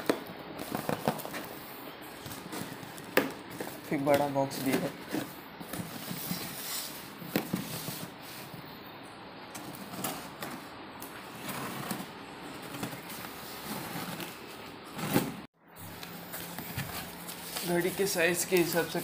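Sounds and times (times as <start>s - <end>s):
tape crackling: 0.0s - 7.6s, 9.5s - 19.0s
cardboard scraping and rustling: 0.1s - 1.6s, 2.2s - 8.6s, 9.6s - 15.5s, 16.3s - 19.0s.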